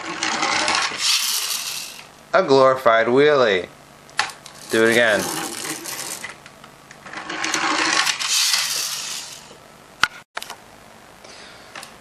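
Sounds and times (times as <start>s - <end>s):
toy motorcycle whirring: 0.0s - 2.1s, 4.4s - 6.4s, 7.1s - 9.6s
toy wind-up rapid clicking: 1.0s - 2.1s, 4.5s - 6.3s, 7.6s - 9.5s.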